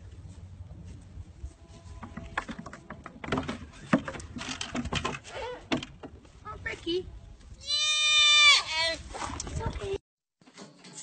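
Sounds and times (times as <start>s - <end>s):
goat kid bleating: 7.6s - 8.7s.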